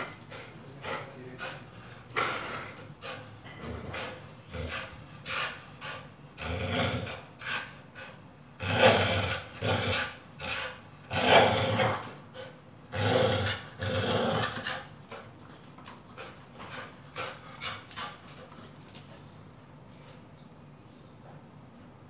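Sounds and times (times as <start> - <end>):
dog growling: 0.0 - 15.0.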